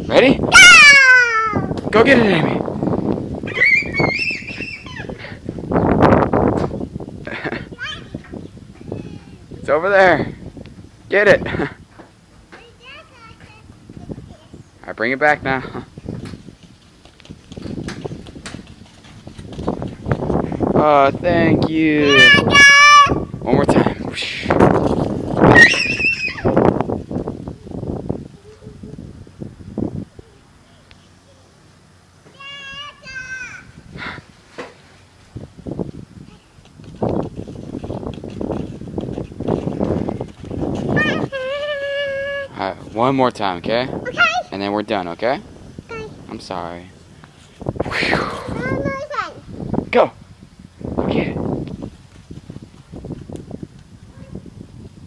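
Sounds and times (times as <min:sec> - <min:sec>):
faint outdoor background: 0:00.0 - 0:55.0
child crying out: 0:00.5 - 0:01.7, 0:03.5 - 0:05.2, 0:22.1 - 0:23.2, 0:25.5 - 0:26.6, 0:41.0 - 0:42.6
child squealing: 0:00.5 - 0:01.7, 0:03.5 - 0:05.3, 0:22.0 - 0:23.2, 0:25.5 - 0:26.6, 0:41.0 - 0:42.6
noisy movement: 0:01.6 - 0:55.0
shrieks: 0:03.5 - 0:05.3, 0:25.4 - 0:26.6.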